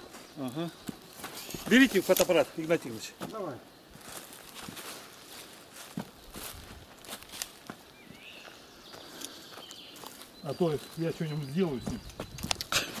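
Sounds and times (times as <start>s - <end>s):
footsteps crunching on sandy path: 0.0s - 13.0s
sticks snapping underfoot: 7.2s - 7.8s, 12.0s - 13.0s.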